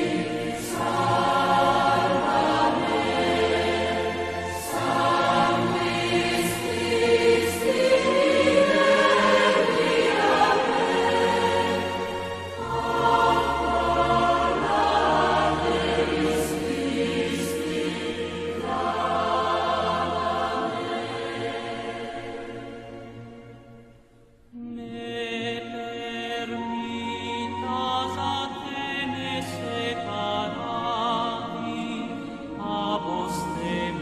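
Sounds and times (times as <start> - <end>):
choir singing a hymn: 0.0 - 23.7, 24.5 - 34.0.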